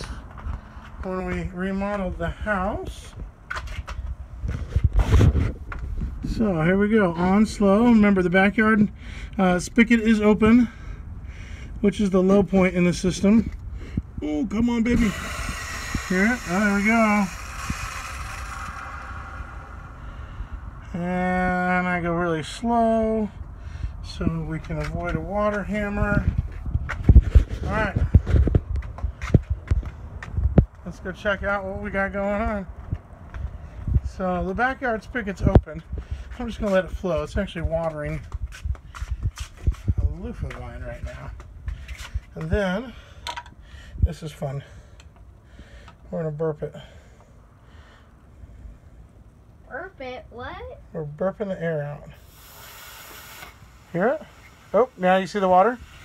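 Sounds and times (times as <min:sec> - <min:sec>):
footsteps on concrete: 0:00.0 - 0:02.2, 0:24.3 - 0:30.9, 0:32.7 - 0:34.1, 0:35.9 - 0:42.8
air hissing from valve: 0:14.9 - 0:20.6, 0:52.1 - 0:56.0.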